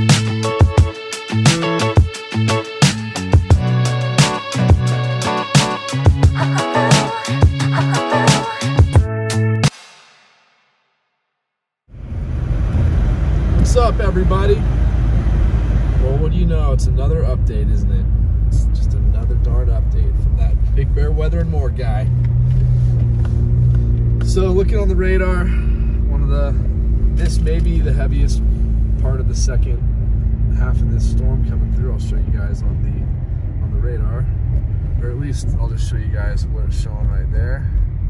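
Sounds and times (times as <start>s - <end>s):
car engine and tyres rumbling: 11.9s - 38.0s.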